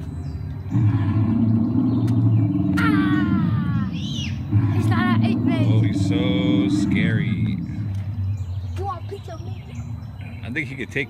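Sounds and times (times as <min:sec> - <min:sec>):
deep dinosaur roar from loudspeaker: 0:00.6 - 0:08.0.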